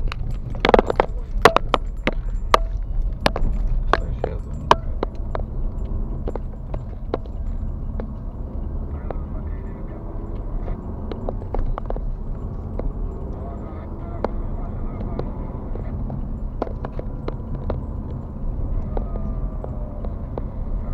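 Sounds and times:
car engine and tyres rumbling: 0.0 - 20.9
car knocks and rattles: 0.0 - 20.9.

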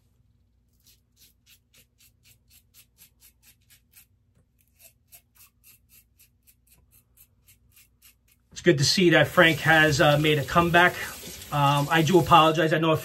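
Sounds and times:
razor scraping stubble: 0.7 - 12.5.

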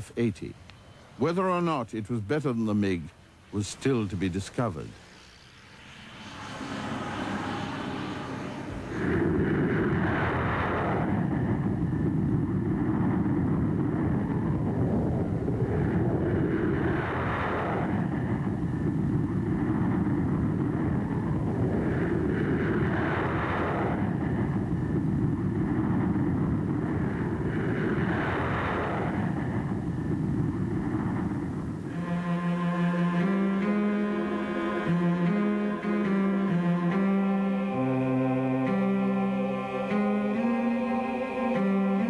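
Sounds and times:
jet engines rumbling: 0.0 - 42.0
high rushing sound: 3.8 - 11.2.

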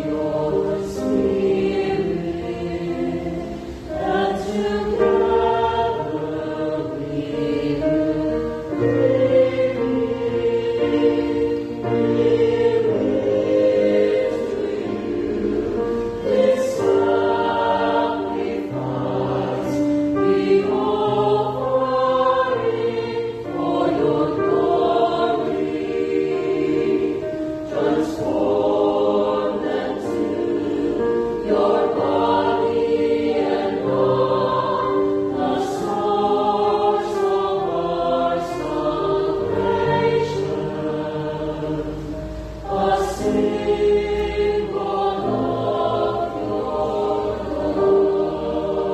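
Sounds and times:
choir singing a hymn: 0.0 - 48.9
keyboard accompaniment: 0.0 - 48.9.

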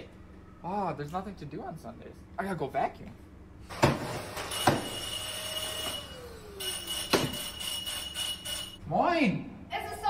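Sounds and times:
vacuum cleaner whine: 4.0 - 8.6.

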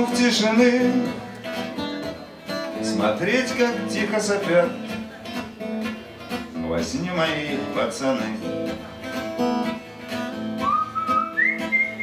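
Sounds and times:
acoustic guitar strummed: 0.0 - 12.0
whistled melody: 10.6 - 12.0.

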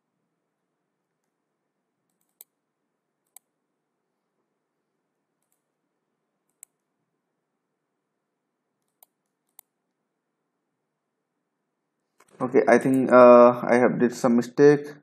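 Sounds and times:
faint room hiss: 0.0 - 15.0
computer mouse clicking: 2.1 - 2.6, 3.2 - 3.5, 5.4 - 5.7, 6.4 - 6.9, 8.8 - 9.8.

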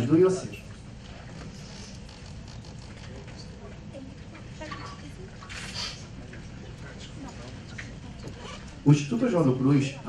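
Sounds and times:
audience rustles and murmurs: 0.0 - 10.0
man speaking over loudspeakers: 8.8 - 10.0.

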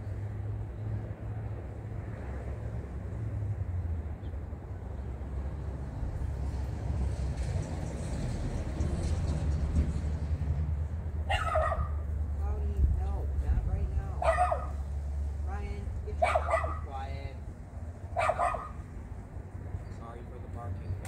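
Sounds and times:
dog barking: 11.3 - 12.1, 14.2 - 14.9, 16.2 - 16.9, 18.1 - 18.8
steady low rumble: 11.9 - 16.3.

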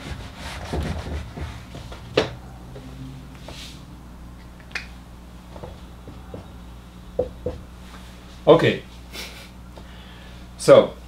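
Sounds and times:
low steady hum: 0.0 - 11.0
marker tapping whiteboard: 7.2 - 7.6.

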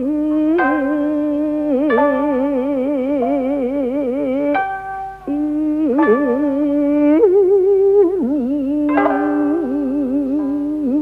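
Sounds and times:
person singing with vibrato: 0.0 - 11.0
plucked strings: 0.0 - 11.0.

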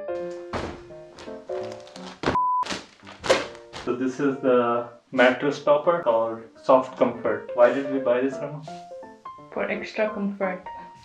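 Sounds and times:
background music with steady beat: 0.0 - 1.6, 6.1 - 11.0
mattress topper thunk: 0.3 - 3.9
short beep: 2.4 - 2.7.

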